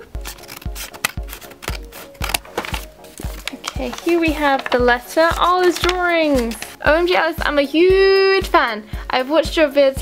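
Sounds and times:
background music with steady beat: 0:00.0 - 0:10.0
paper crinkling and rustling: 0:00.1 - 0:06.8.

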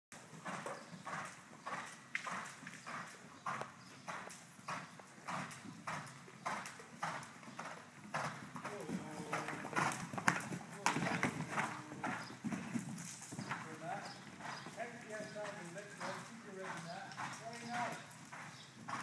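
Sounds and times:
horse hooves cantering on dirt: 0:00.1 - 0:19.0.

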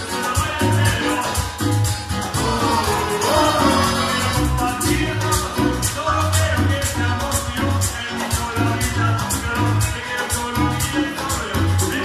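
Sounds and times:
congas: 0:00.0 - 0:12.0
latin dance band playing: 0:00.0 - 0:12.0
pulsing bass line: 0:00.0 - 0:12.0.

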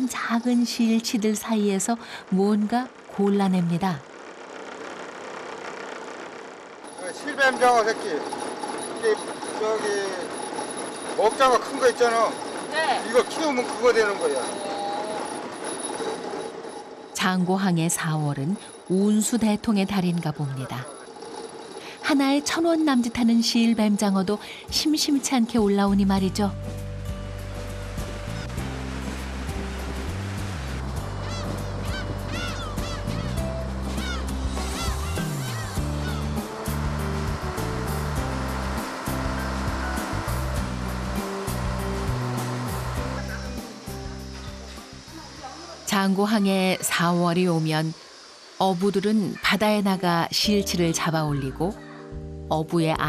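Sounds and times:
boat background noise: 0:00.0 - 0:53.0
gulls calling: 0:07.0 - 0:16.4, 0:27.6 - 0:50.2.

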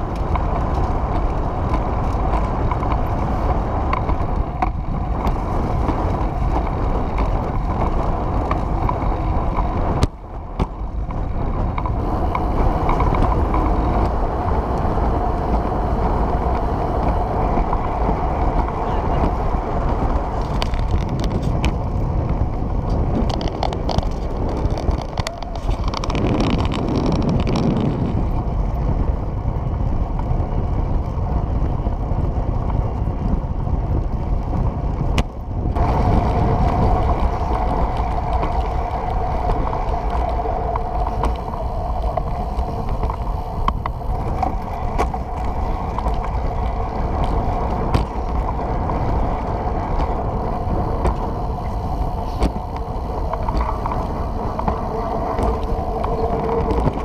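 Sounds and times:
trike wheels rolling on concrete: 0:00.0 - 0:57.0
wind on microphone: 0:00.0 - 0:57.0.

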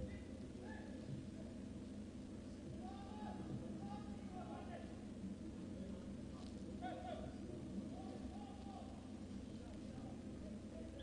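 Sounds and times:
low hum: 0:00.0 - 0:11.0
distant players shouting: 0:02.7 - 0:04.9.

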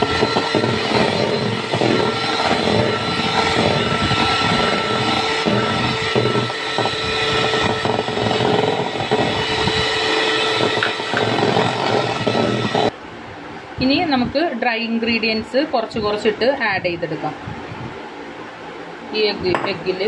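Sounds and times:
electric hand mixer whine: 0:00.0 - 0:13.0.

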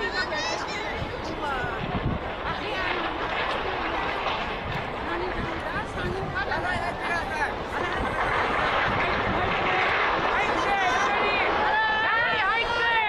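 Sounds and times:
floodwater rushing: 0:00.0 - 0:13.0.

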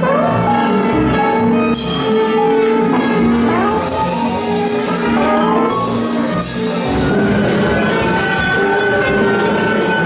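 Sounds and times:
large ensemble improvising loudly: 0:00.0 - 0:10.0
busy drumming: 0:03.7 - 0:10.0.

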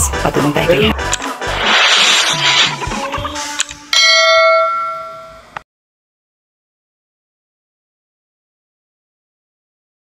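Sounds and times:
bright bell chime: 0:03.9 - 0:05.6.

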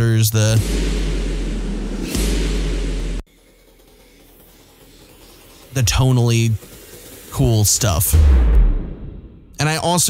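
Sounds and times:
deep steady hum: 0:00.0 - 0:09.6
noisy hiss: 0:03.3 - 0:08.2.

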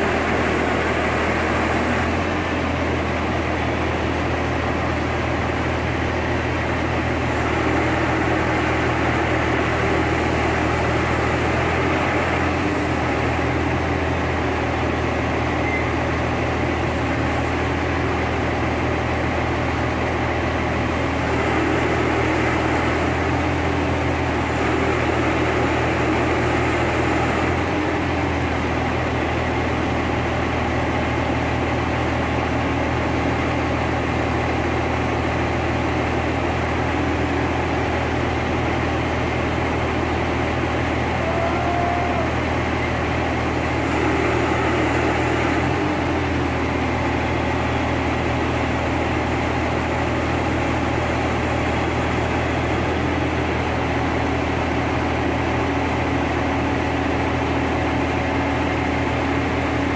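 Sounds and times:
diesel engine droning: 0:00.0 - 0:59.9.

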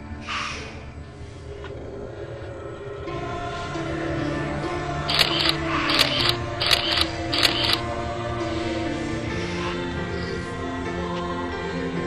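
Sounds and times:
background music: 0:00.0 - 0:12.0
camera shutter sound effects: 0:05.1 - 0:07.8.

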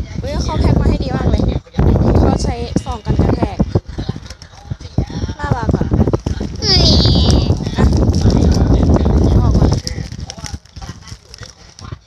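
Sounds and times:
envelope crinkling against microphone: 0:03.7 - 0:12.0.

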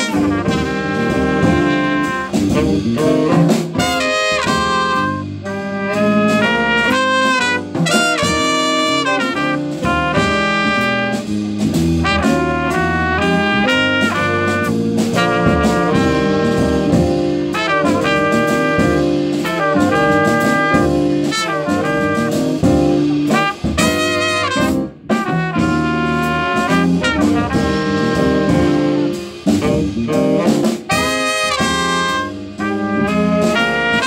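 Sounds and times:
drum kit: 0:00.0 - 0:34.0
piano: 0:00.0 - 0:34.0
trumpet and saxophones: 0:00.0 - 0:34.0.

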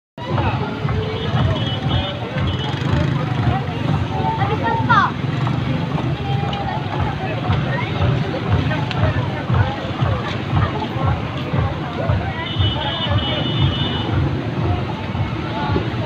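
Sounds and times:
background music: 0:00.2 - 0:16.0
motorcycle engines running: 0:00.2 - 0:16.0
people talking: 0:00.2 - 0:16.0.

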